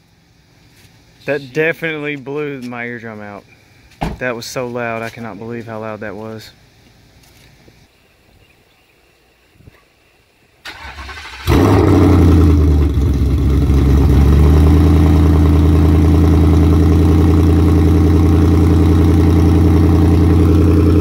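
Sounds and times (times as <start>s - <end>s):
loud engine idling: 11.5s - 21.0s.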